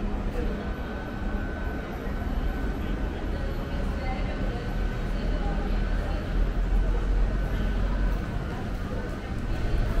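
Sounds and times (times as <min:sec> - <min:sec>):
low city rumble: 0:00.0 - 0:10.0.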